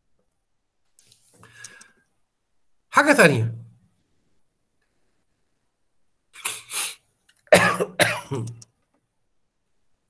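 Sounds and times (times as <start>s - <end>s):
man coughing: 6.4s - 8.6s.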